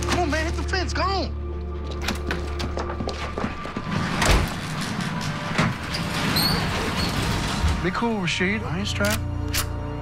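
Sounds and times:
music: 0.0 - 10.0
door banging and rattling: 2.0 - 8.1.

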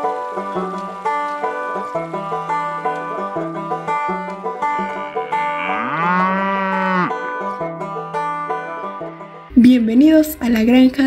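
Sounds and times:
banjo music: 0.0 - 10.9
cow mooing: 4.7 - 9.6.

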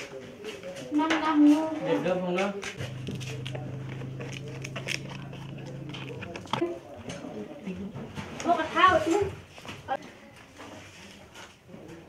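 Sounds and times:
leaves crackling: 2.8 - 6.6
low hum: 2.8 - 6.6.

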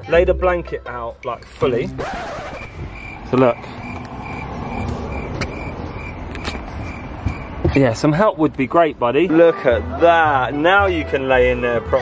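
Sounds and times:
high repeating beep: 2.4 - 7.6
sharp clicks: 3.4 - 4.2, 6.3 - 6.7.

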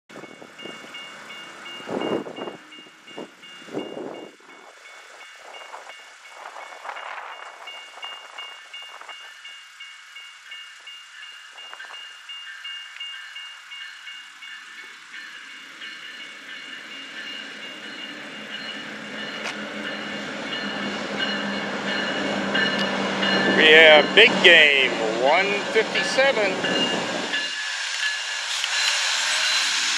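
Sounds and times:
crossing warning bells ringing: 0.1 - 29.9
diesel locomotive engine rumble: 0.1 - 29.9.

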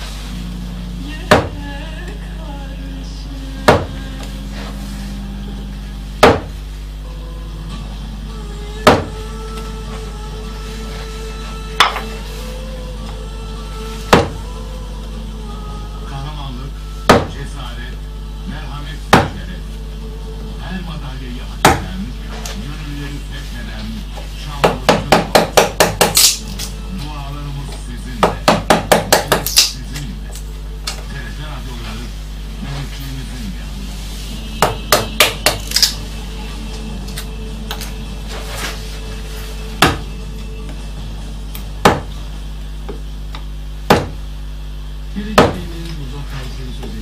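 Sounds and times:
mallet striking chisel into wood: 1.3 - 1.6, 3.6 - 4.0, 6.2 - 6.6, 8.8 - 9.2, 11.8 - 12.0, 14.1 - 14.4, 17.1 - 17.4, 19.1 - 19.4, 21.6 - 21.9, 24.6 - 26.4, 28.2 - 29.8, 34.6 - 36.0, 39.8 - 40.1, 41.8 - 42.2, 43.9 - 44.2, 45.4 - 45.6.

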